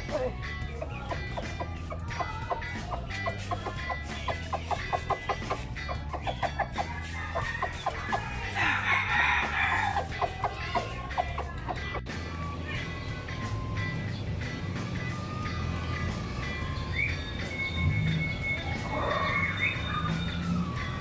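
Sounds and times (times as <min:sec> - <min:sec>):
chickens clucking: 0:00.0 - 0:12.2
music: 0:00.0 - 0:21.0
rooster crowing: 0:07.3 - 0:10.6.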